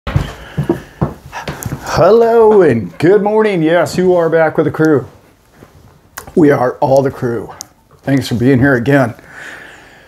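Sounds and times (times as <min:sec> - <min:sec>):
breaths: 0:00.1 - 0:01.9, 0:09.2 - 0:10.0.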